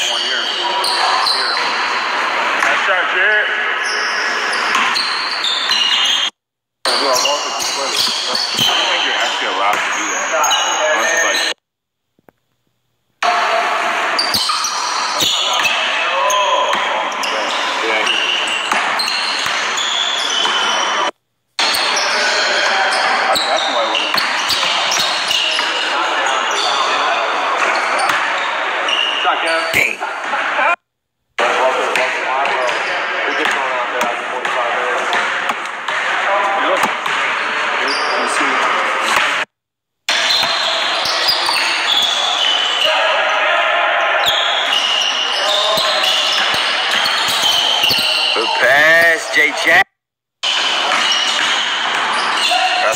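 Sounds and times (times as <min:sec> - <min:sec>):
players talking and calling out: 0:00.0 - 0:11.6, 0:13.2 - 0:39.5, 0:40.1 - 0:52.9.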